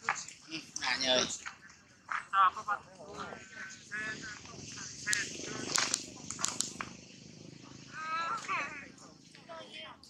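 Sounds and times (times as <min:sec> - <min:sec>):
people talking: 0:00.0 - 0:06.9, 0:07.5 - 0:10.0
sharp clicks: 0:05.0 - 0:06.9.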